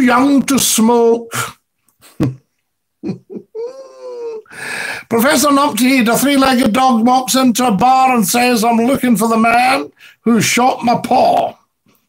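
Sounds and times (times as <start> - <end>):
man laughing: 2.0 - 4.5.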